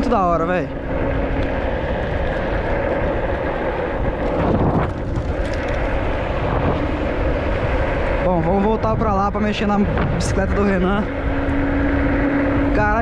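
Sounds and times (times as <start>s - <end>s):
steady hum: 0.0s - 13.0s
wind and road noise: 0.0s - 13.0s.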